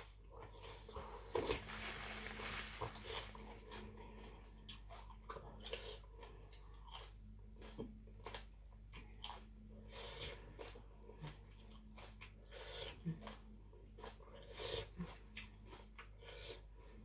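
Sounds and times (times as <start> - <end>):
low steady hum: 0.0 - 17.0
chewing and mouth smacks: 3.6 - 16.6.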